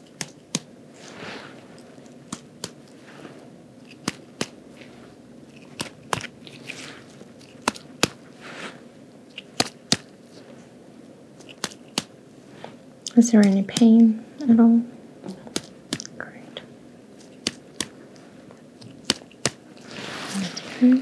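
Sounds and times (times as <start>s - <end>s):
gown rustling: 6.2s - 7.5s, 19.7s - 21.0s.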